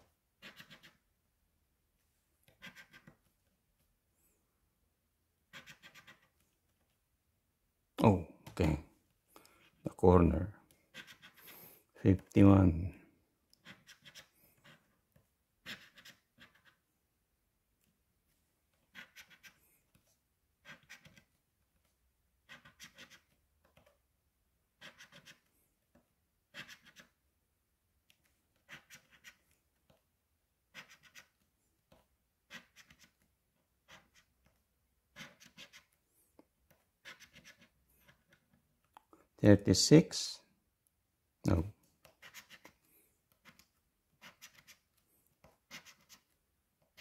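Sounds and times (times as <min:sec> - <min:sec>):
coin scratching ticket: 0:00.4 - 0:01.0, 0:02.6 - 0:03.1, 0:05.5 - 0:06.3, 0:10.9 - 0:11.5, 0:15.6 - 0:16.8, 0:18.9 - 0:19.6, 0:20.6 - 0:21.2, 0:22.5 - 0:23.3, 0:24.8 - 0:25.4, 0:26.5 - 0:27.1, 0:28.7 - 0:29.4, 0:30.7 - 0:31.3, 0:32.5 - 0:33.1, 0:35.2 - 0:35.9, 0:37.0 - 0:38.2, 0:42.2 - 0:42.7, 0:44.2 - 0:44.8, 0:45.7 - 0:46.3.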